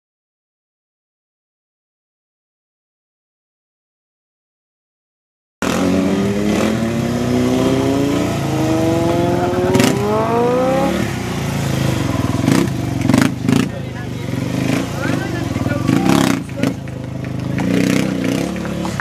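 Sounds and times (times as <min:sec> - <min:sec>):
motorcycle engine revving: 0:05.6 - 0:19.0.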